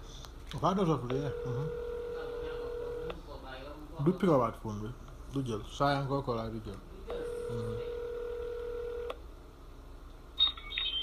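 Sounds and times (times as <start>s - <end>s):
telephone ringback tone: 1.2s - 3.1s, 7.2s - 9.1s, 10.4s - 11.0s.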